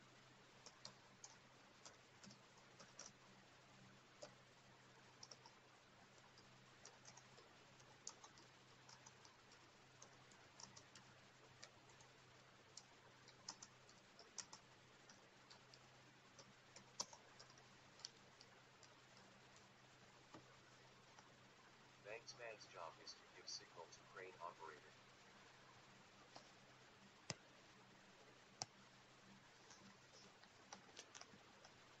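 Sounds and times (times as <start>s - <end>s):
low steady hum: 0.0s - 32.0s.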